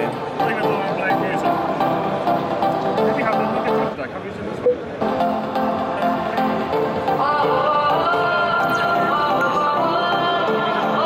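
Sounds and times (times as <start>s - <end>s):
music through speaker: 0.0s - 4.0s, 4.9s - 11.0s.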